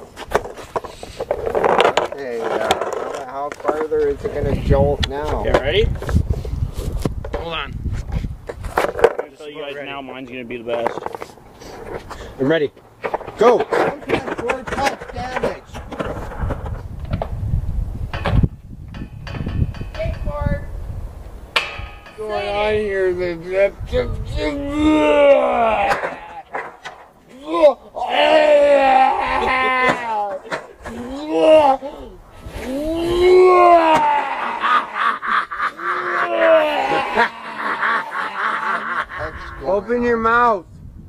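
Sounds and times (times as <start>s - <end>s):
skateboards knocking on wood: 0.0s - 4.3s, 11.8s - 17.4s, 25.7s - 27.1s, 29.6s - 31.1s
skateboard scraping: 0.0s - 4.4s, 10.7s - 12.4s, 13.0s - 17.4s
skateboard wheels rolling on wood: 13.0s - 17.5s
people shouting: 24.5s - 26.5s, 27.4s - 31.8s, 32.6s - 35.1s, 35.8s - 39.6s.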